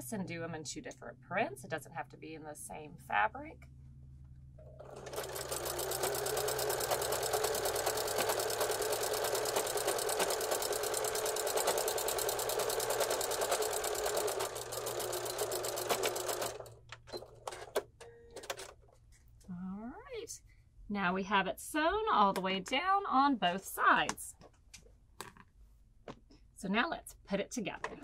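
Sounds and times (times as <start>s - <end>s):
electric sewing machine stitching: 4.7s - 17.8s.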